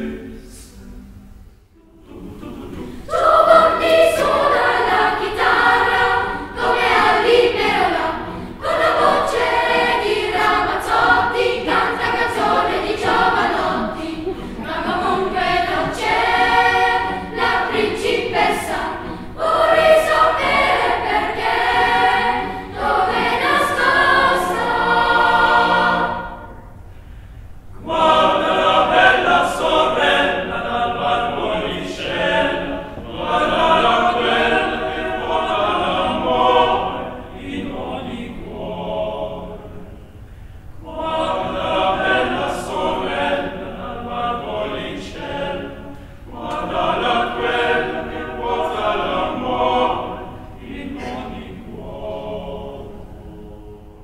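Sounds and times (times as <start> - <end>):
boys' choir singing: 0.0 - 26.9, 27.8 - 40.2, 40.8 - 54.0.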